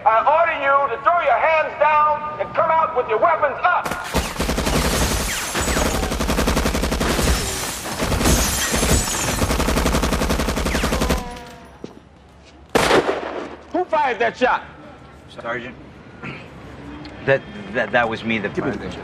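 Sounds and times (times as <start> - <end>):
rapid gunfire volley: 3.8 - 11.4.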